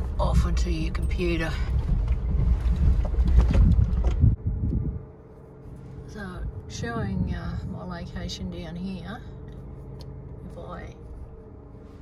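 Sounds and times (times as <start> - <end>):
vehicle cabin rumble: 0.0 - 12.0.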